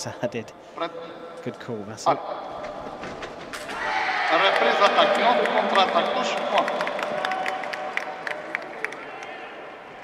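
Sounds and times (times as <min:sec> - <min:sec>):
fencing arena background noise: 0:00.0 - 0:10.0.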